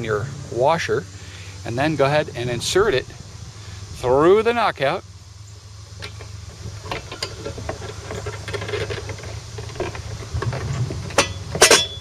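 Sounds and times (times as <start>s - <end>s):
low steady hum: 0.0s - 12.0s
handling clicks and rustles: 5.8s - 12.0s.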